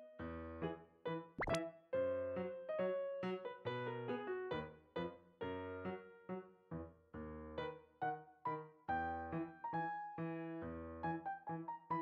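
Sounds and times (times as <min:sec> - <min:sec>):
upward-sweeping pop effect: 0:01.4 - 0:01.7
cheerful keyboard music: 0:01.4 - 0:03.1.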